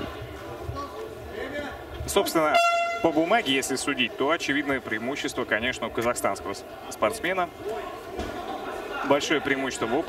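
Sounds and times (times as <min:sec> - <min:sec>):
horn steady tone: 0:02.5 - 0:03.3.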